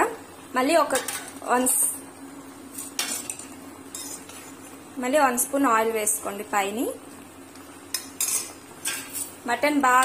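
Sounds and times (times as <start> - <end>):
spatula scraping metal pot: 2.7 - 4.6, 7.9 - 9.4.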